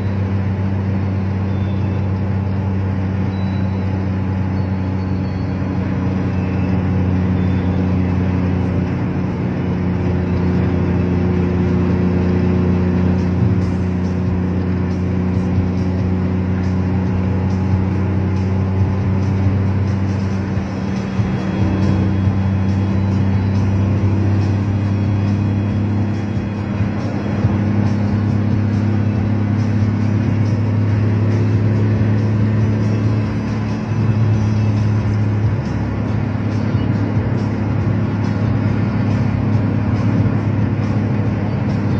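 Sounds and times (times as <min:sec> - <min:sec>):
music playing: 0:00.0 - 0:41.9
road noise: 0:00.0 - 0:41.9
vehicle engine drone: 0:00.0 - 0:41.9.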